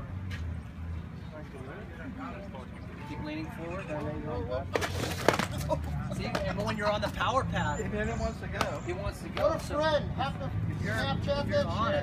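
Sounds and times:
voices: 1.1s - 12.0s
board clattering onto asphalt: 4.7s - 6.7s.

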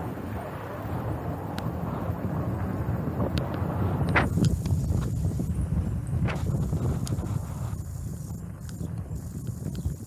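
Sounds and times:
bicycle tyres rumbling on pavement: 0.0s - 10.0s
bicycle clicks and rattles: 3.3s - 10.0s.

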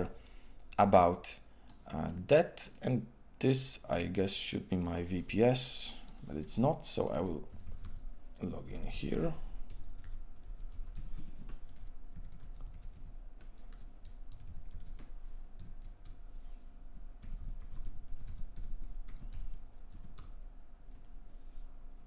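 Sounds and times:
typing on a keyboard: 7.4s - 8.2s, 8.8s - 16.2s, 16.9s - 20.4s.

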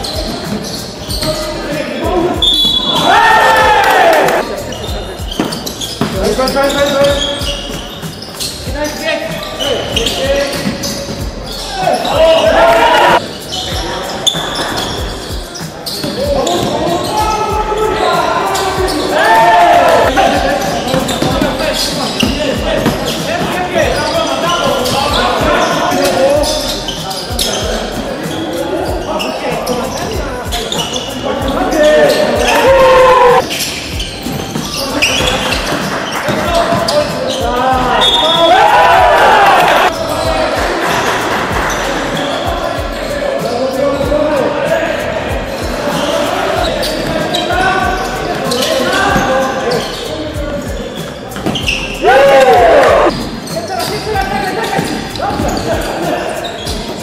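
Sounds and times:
players shouting: 2.3s - 4.8s, 9.5s - 15.2s, 15.9s - 21.9s, 30.7s - 33.5s, 34.8s - 43.2s, 51.6s - 53.1s.

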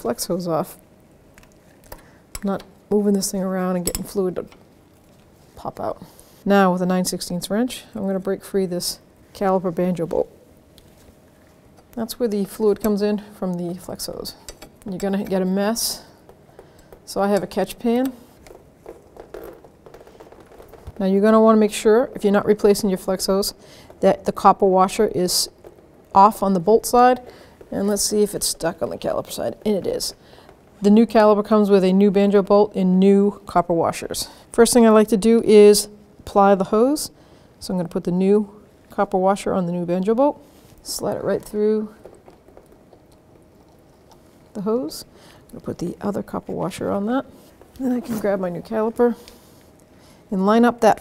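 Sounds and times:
room hum: 0.0s - 51.0s
soft handling noises: 10.7s - 12.0s, 46.3s - 50.0s.

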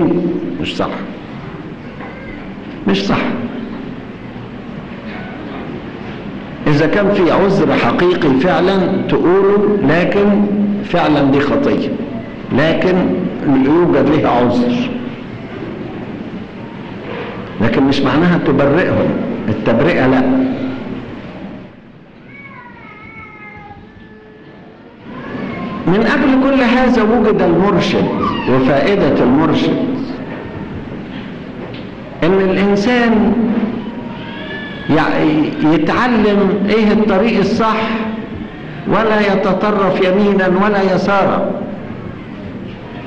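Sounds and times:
man talking: 0.0s - 1.2s, 2.8s - 3.6s, 6.6s - 15.1s, 17.6s - 20.9s, 25.8s - 30.2s, 32.2s - 33.8s, 34.9s - 41.8s
recording hiss and low hum: 0.0s - 43.0s
high-pitched cry: 22.3s - 25.8s, 28.1s - 28.6s.

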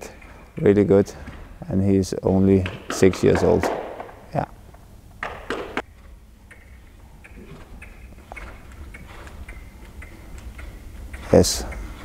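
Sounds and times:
horse hooves striking sand: 5.2s - 12.0s.

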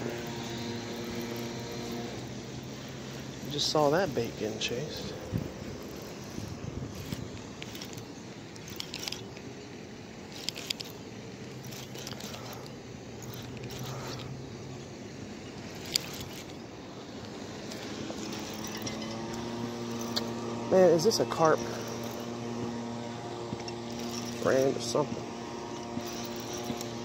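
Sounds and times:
steady outdoor hum: 0.0s - 27.0s
short scrapes and clicks: 3.1s - 9.5s, 10.3s - 14.4s, 15.6s - 16.6s, 17.6s - 20.5s, 23.6s - 25.1s, 25.7s - 27.0s
sleeve rubbing against camera: 25.8s - 27.0s.

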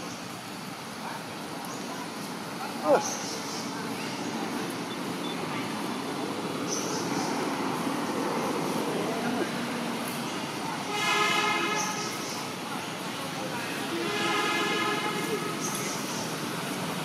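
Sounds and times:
road traffic hum: 0.0s - 17.0s
vehicle horn honking: 10.9s - 12.2s, 13.9s - 15.8s.

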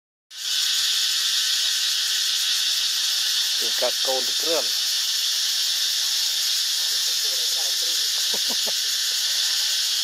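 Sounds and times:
insect chorus: 0.3s - 10.0s.

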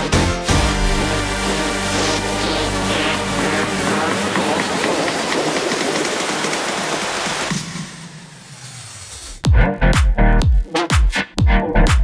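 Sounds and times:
music: 0.0s - 12.0s
roller coaster train rushing on track: 1.8s - 7.6s.

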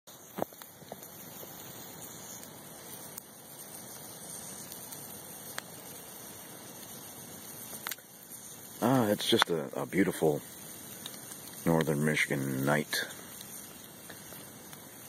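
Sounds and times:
campfire hissing: 0.1s - 15.0s
sharp pops of burning wood: 0.1s - 15.0s.

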